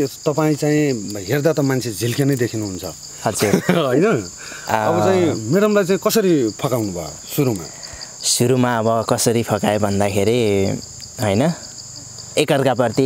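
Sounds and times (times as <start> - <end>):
high-pitched insect chirring: 0.0 - 13.0
person speaking: 1.8 - 6.0.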